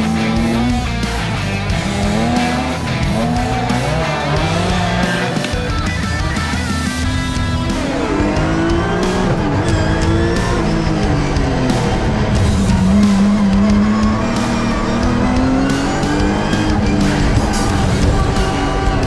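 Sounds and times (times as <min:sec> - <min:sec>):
background music: 0:00.0 - 0:19.0
car engine revving: 0:00.0 - 0:19.0.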